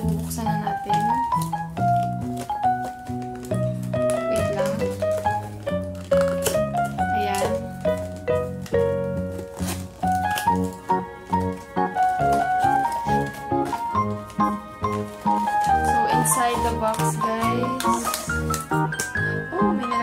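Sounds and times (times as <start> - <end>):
background music melody: 0.0 - 20.0.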